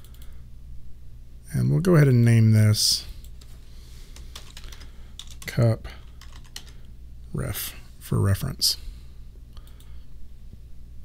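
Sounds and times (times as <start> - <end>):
computer keyboard typing: 4.2 - 6.8.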